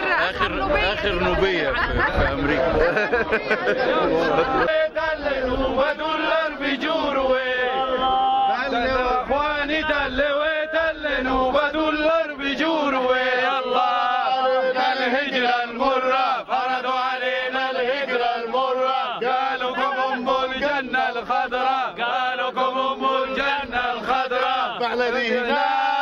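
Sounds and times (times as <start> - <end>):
men chanting in unison: 0.0 - 26.0.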